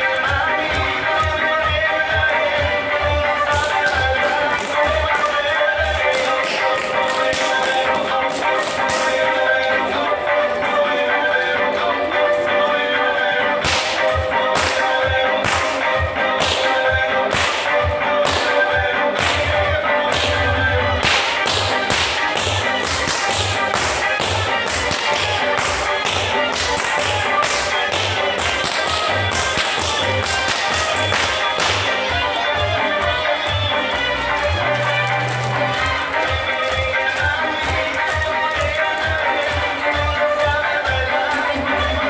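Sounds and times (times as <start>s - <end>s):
music: 0.0s - 42.0s
whip cracks: 13.6s - 15.8s, 16.4s - 18.6s, 21.0s - 31.9s.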